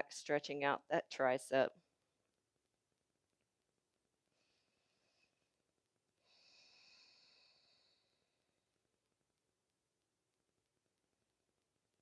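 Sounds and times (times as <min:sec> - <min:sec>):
faint long breath: 0:06.2 - 0:08.4.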